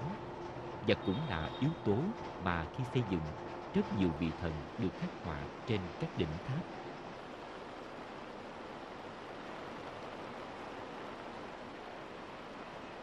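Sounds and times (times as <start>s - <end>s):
steady rushing noise: 0.0s - 13.0s.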